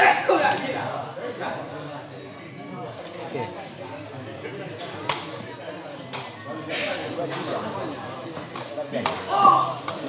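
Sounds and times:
crowd chatter: 0:00.0 - 0:10.0
loud shout: 0:09.3 - 0:09.8.

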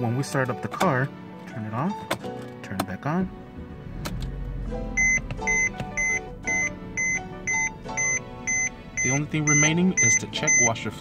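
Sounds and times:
background music: 0:00.0 - 0:11.0
short high warning beeps: 0:05.0 - 0:10.8.

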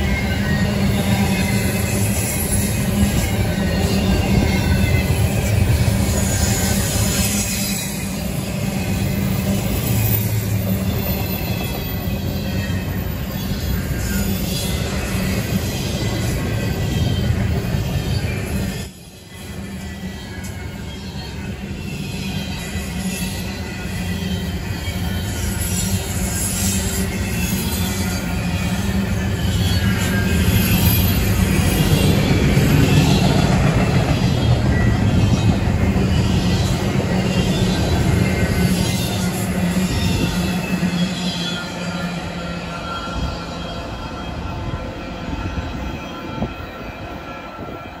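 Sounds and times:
freight train wheels rumbling: 0:00.0 - 0:48.0.

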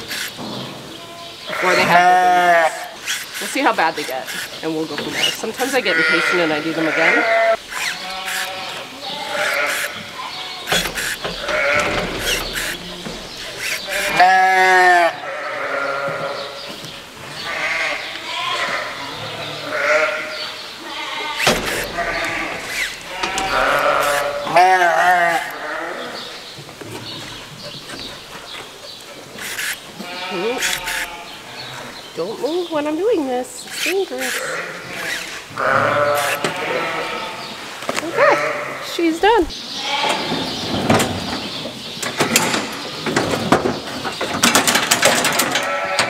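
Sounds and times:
sheep bleating: 0:01.0 - 0:03.0, 0:05.6 - 0:10.7, 0:11.4 - 0:13.1, 0:13.8 - 0:16.6, 0:17.4 - 0:26.2, 0:30.0 - 0:31.9, 0:34.2 - 0:40.4, 0:45.6 - 0:46.0.

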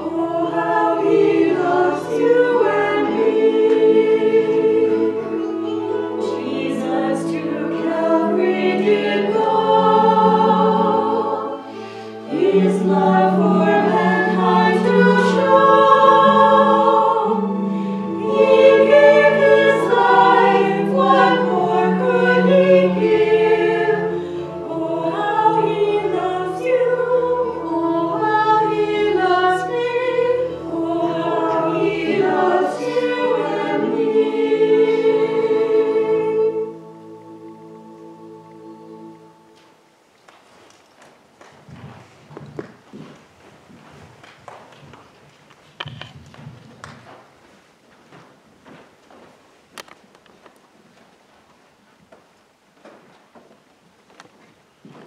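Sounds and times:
women singing a hymn: 0:00.0 - 0:39.6.

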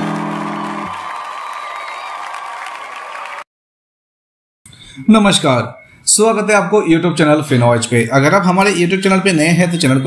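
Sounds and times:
crowd cheering: 0:00.0 - 0:03.5
faint wavering whistle tones: 0:04.7 - 0:06.5.

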